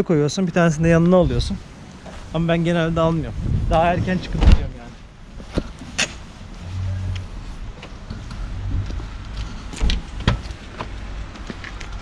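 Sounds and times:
low steady rumble: 0.6s - 11.3s
car door opening: 4.3s - 4.8s
footsteps on wet pavement: 5.3s - 12.0s.

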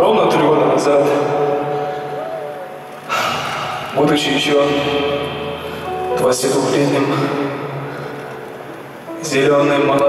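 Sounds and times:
man's voice echoing in hall: 0.0s - 10.0s
soft background music chord: 0.0s - 10.0s.

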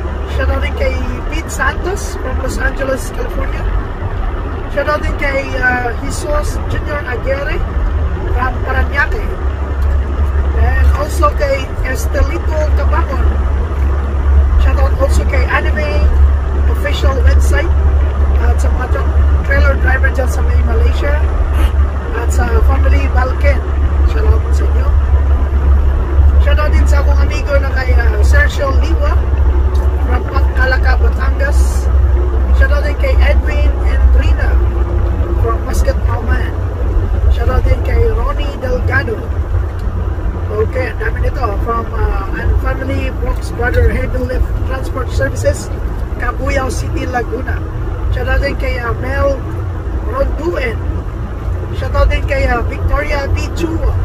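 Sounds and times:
truck engine rumble inside cab: 0.0s - 54.0s
man talking: 0.2s - 3.8s, 4.7s - 13.9s, 14.6s - 25.0s, 26.3s - 34.7s, 35.3s - 36.6s, 37.2s - 39.4s, 40.4s - 50.9s, 51.7s - 54.0s.

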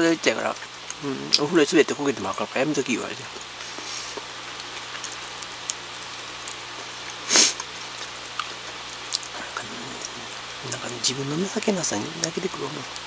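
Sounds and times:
chewing bread: 0.4s - 1.4s, 3.2s - 11.0s
breathy hiss: 3.5s - 4.4s, 7.2s - 8.0s.

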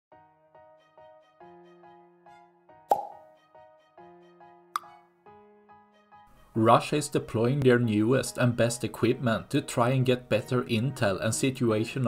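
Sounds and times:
light background music: 0.2s - 12.0s.

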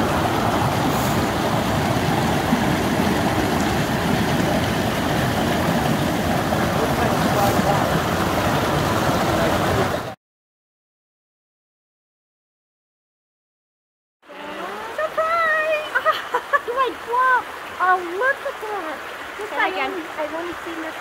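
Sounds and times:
water rushing over rocks: 0.0s - 10.2s, 14.3s - 21.0s.

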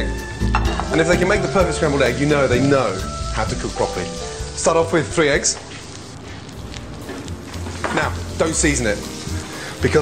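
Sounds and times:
background music: 0.0s - 10.0s
vegetables sizzling in a pan: 1.2s - 10.0s.

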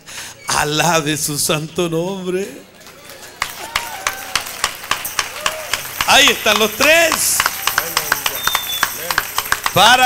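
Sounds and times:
hands clapping in rhythm: 2.8s - 10.0s.

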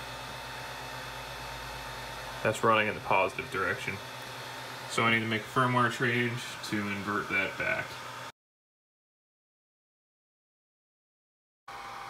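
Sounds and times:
fans running: 0.0s - 8.3s
printer motor hum: 0.0s - 8.3s, 11.7s - 12.0s.

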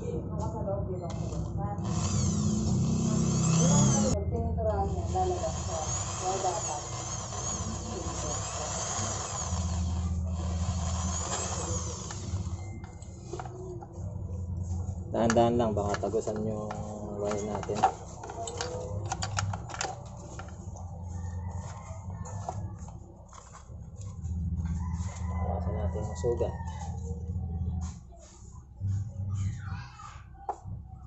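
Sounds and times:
electric drill boring: 1.1s - 4.2s, 4.8s - 13.5s, 15.3s - 20.6s.

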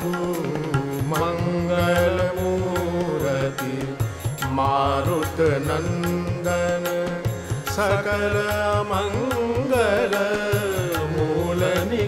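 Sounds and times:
tabla strokes: 0.0s - 12.0s.

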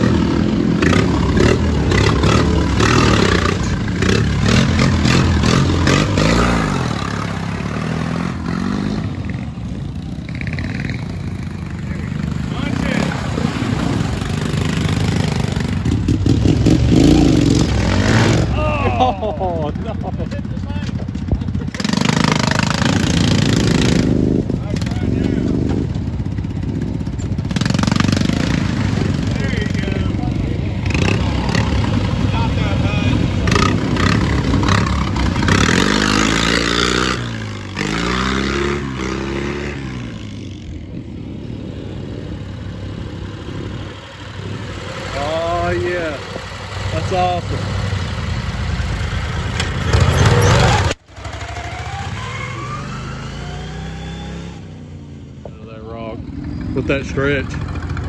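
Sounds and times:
off-road vehicle engines revving: 0.0s - 58.0s
voices: 11.5s - 14.3s, 18.4s - 22.4s, 24.5s - 25.7s, 28.3s - 34.8s, 45.0s - 47.9s, 55.4s - 57.9s.

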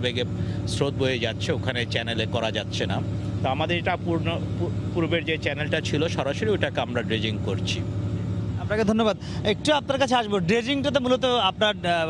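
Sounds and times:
man speaking: 0.0s - 7.9s, 8.6s - 12.0s
engine hum: 0.0s - 12.0s.

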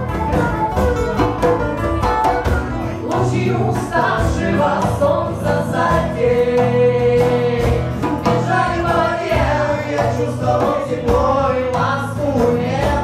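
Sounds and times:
acoustic guitar: 0.0s - 13.0s
hand drum: 0.0s - 13.0s
voices singing together: 2.8s - 13.0s.

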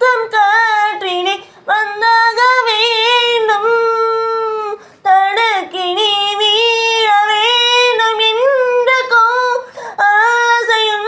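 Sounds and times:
woman singing: 0.0s - 11.0s
singer breathing: 1.4s - 1.7s, 4.8s - 5.1s, 9.6s - 10.0s.

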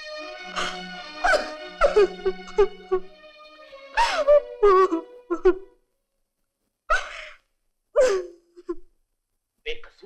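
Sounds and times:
woman crying or sobbing: 0.5s - 3.1s, 3.9s - 5.8s.

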